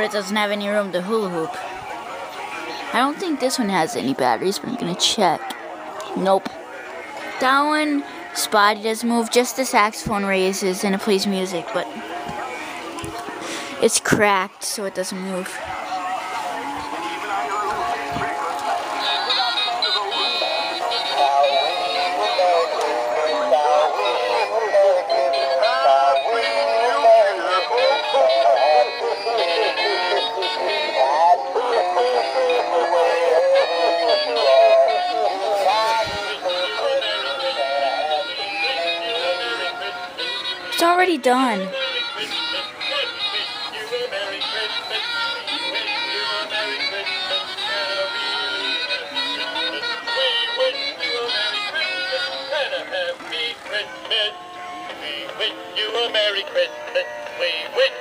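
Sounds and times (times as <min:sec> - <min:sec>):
electronic christmas music: 0:13.4 - 0:58.0
toy figurines playing songs: 0:15.2 - 0:58.0.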